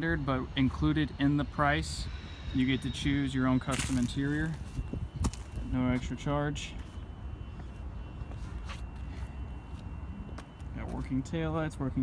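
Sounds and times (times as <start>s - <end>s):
footsteps on asphalt: 3.7s - 11.2s.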